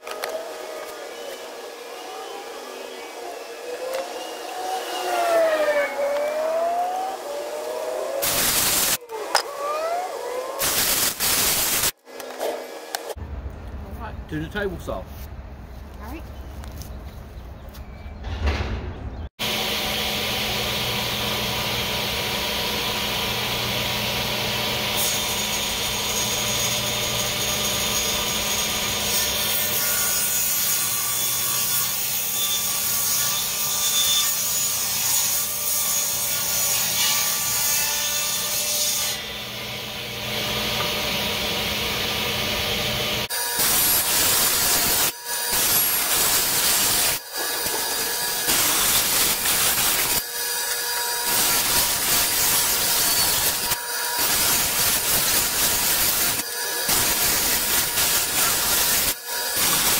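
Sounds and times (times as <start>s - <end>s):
table saw ripping a board: 0.0s - 13.2s, 43.2s - 59.9s.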